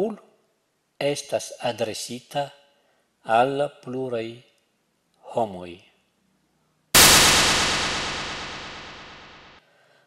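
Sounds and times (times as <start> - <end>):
loud crash with ringing: 7.0 - 9.6.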